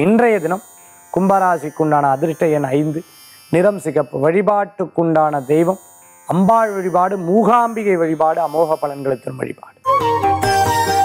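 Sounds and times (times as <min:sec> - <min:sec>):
man speaking: 0:00.0 - 0:09.8.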